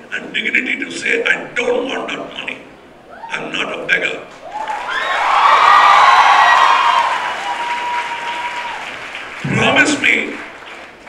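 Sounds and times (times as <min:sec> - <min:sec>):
audience applauding and cheering: 0:04.4 - 0:11.0.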